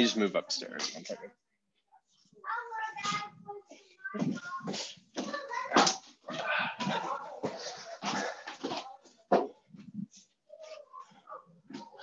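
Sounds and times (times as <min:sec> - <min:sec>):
young children calling: 0:02.4 - 0:07.6.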